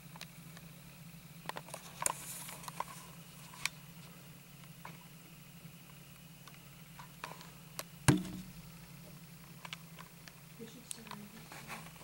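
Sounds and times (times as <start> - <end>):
steady low hum: 0.0 - 12.0
sharp knock with low ring: 8.1 - 8.6.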